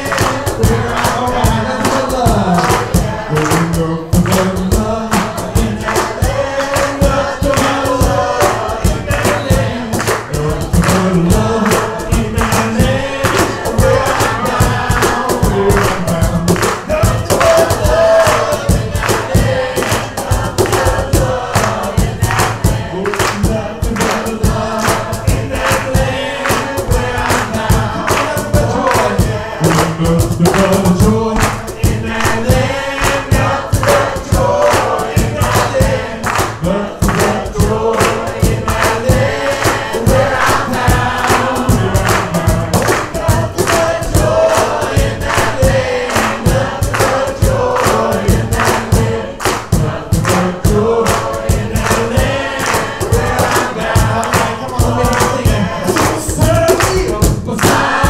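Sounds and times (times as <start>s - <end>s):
band playing with steady beat: 0.0s - 58.0s
congregation singing: 0.0s - 58.0s.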